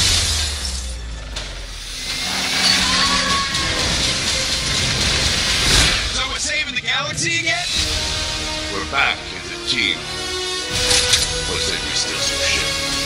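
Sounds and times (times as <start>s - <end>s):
low rumbling drone: 0.0s - 10.8s
hissing swell: 1.8s - 9.7s
hard hit: 2.0s - 6.9s.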